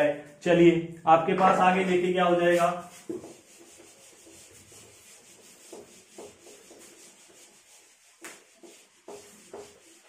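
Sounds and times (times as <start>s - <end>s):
duster rubbing on whiteboard: 1.7s - 10.0s.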